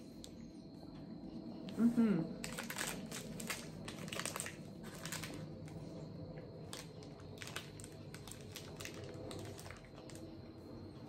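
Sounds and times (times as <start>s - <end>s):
low steady hum: 0.0s - 11.0s
plastic wrapper crinkling: 2.4s - 5.8s, 6.6s - 10.2s.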